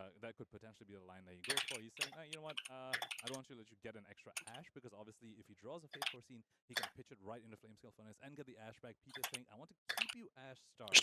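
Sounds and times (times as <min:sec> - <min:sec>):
faint voice: 0:00.0 - 0:11.0
keyboard typing: 0:01.4 - 0:03.4, 0:06.0 - 0:06.2, 0:09.1 - 0:10.2.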